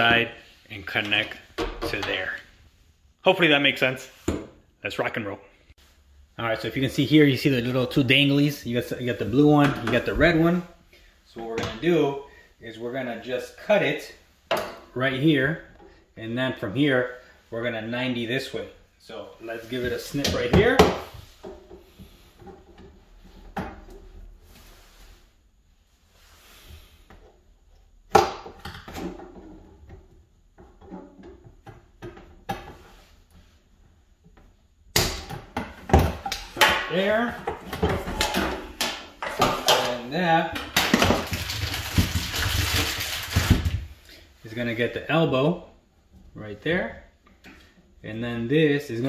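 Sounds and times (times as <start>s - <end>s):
plastic parts knocking and rattling: 35.2s - 43.8s.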